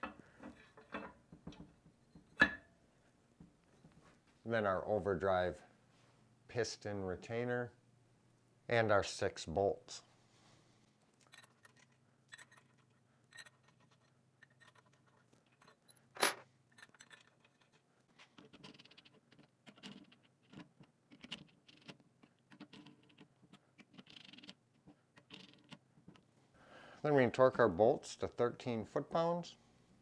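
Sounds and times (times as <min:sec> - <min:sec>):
faint metal clicks and scrapes: 0:11.1 - 0:26.3.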